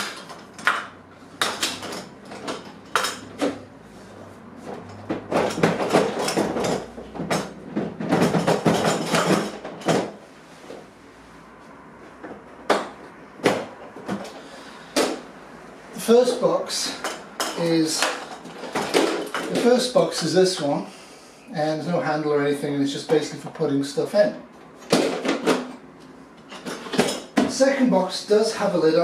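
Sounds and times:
plastic box rattling and scraping: 0:04.7 - 0:10.2.

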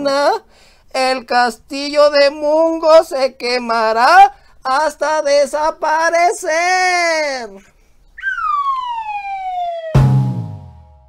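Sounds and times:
comic falling whistle: 0:08.2 - 0:11.0
sudden loud hit: 0:10.0 - 0:11.0.

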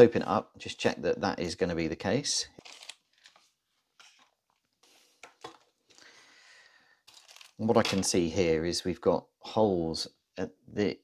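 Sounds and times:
plastic bag crinkling: 0:02.5 - 0:04.7, 0:07.1 - 0:07.7.

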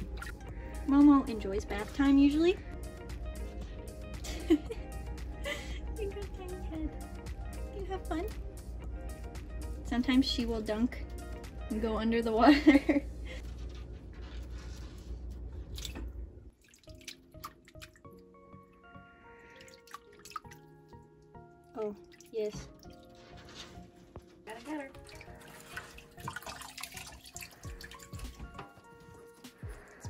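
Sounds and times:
soft background music: 0:00.0 - 0:30.0
water sloshing in sink: 0:15.2 - 0:18.1, 0:19.5 - 0:23.3, 0:24.5 - 0:29.3.

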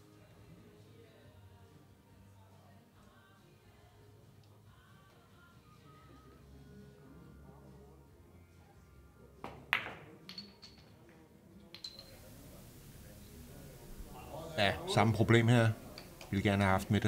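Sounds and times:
cue tip striking ball: 0:09.4 - 0:10.4
billiard balls clicking: 0:09.5 - 0:12.4.

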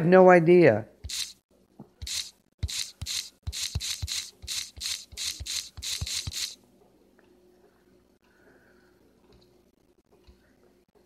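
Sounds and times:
rubbing or brushing strokes: 0:01.0 - 0:01.4, 0:02.0 - 0:06.6.

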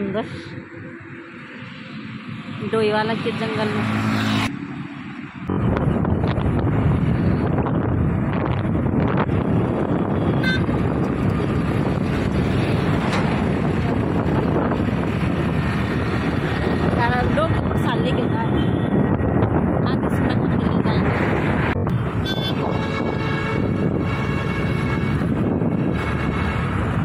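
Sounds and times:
road and engine noise at speed: 0:00.0 - 0:27.0
wind buffeting microphone: 0:05.2 - 0:27.0.

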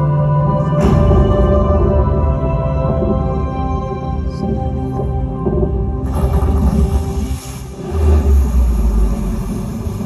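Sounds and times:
music over loudspeakers: 0:00.0 - 0:10.0
deep rumble over loudspeakers: 0:00.8 - 0:10.0
rushing noise: 0:06.0 - 0:10.0.

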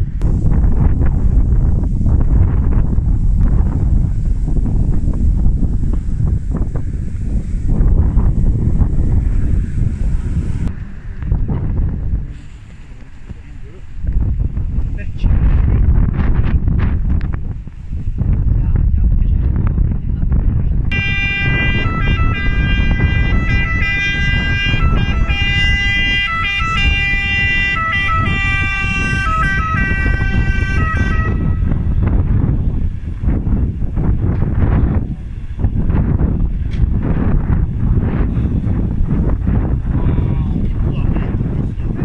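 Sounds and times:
wind rumble on microphone: 0:00.0 - 0:42.0
fire engine two-tone siren: 0:20.9 - 0:31.9.

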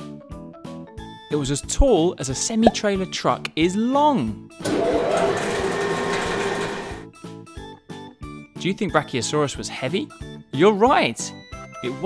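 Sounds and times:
bouncy background music: 0:00.0 - 0:04.9, 0:07.0 - 0:12.0.

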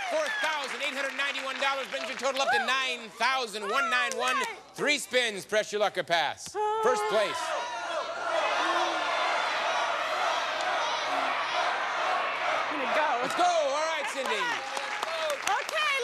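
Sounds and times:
audience clapping: 0:00.0 - 0:04.6, 0:10.3 - 0:16.0
audience shouting: 0:06.9 - 0:15.0.

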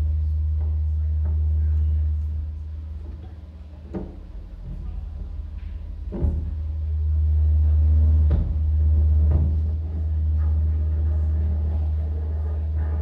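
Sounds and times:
electronic bass drone: 0:00.0 - 0:13.0.

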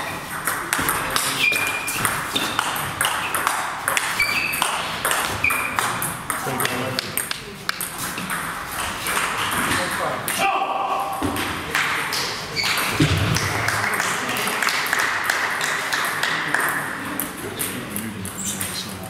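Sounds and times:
table tennis ball clicks: 0:00.4 - 0:08.5.

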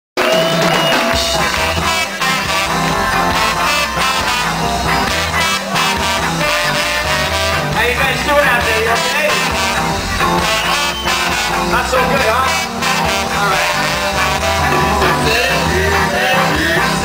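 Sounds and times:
ska band playing: 0:00.2 - 0:17.0
person singing: 0:10.3 - 0:17.0.

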